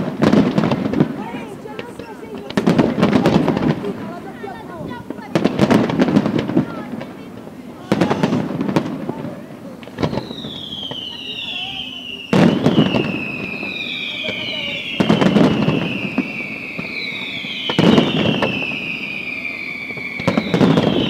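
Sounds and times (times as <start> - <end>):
firework shell bursts: 9.8 - 21.0
firework whistles gliding down: 9.8 - 21.0.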